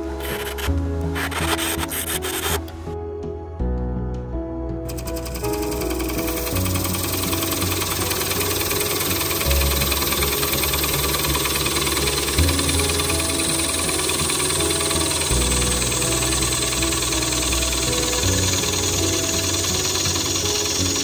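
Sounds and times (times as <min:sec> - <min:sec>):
wood lathe cutting hiss: 0:00.0 - 0:02.7, 0:04.9 - 0:21.0
background music with low notes: 0:00.0 - 0:21.0.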